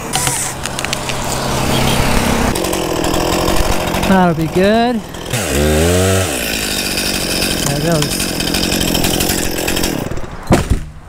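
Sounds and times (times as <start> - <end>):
chainsaw running: 0.1 - 10.4.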